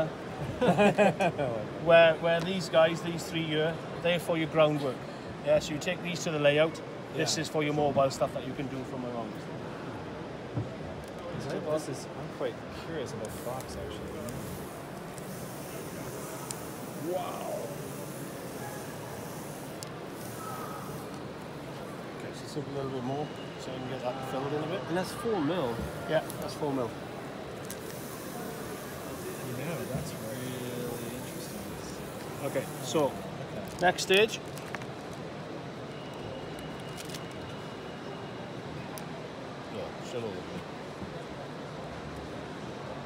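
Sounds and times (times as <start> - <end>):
busy exhibition hall noise: 0.0 - 43.0.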